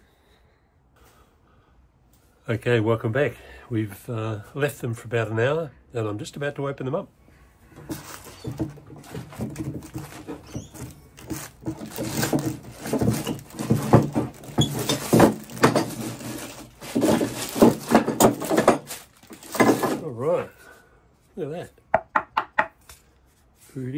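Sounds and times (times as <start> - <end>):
wooden knocks: 7.8 - 20.0, 21.9 - 22.8.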